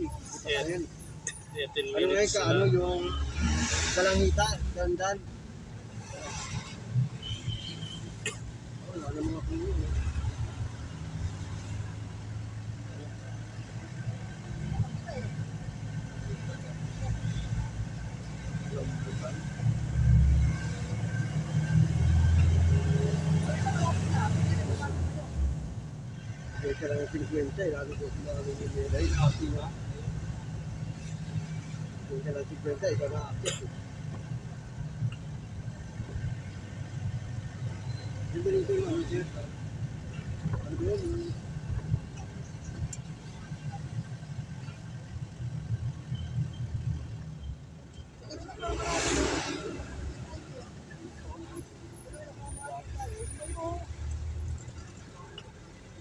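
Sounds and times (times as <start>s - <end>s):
road noise: 0.0s - 56.0s.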